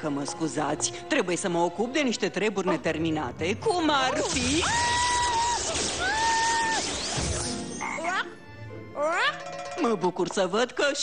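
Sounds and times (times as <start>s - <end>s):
cartoon frog croaking: 7.8s - 8.4s.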